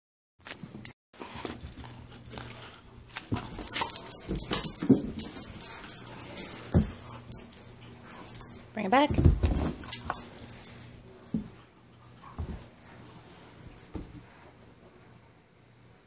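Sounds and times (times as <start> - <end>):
dogs scuffling: 1.2 - 14.4
dogs breathing noisily: 1.2 - 14.6.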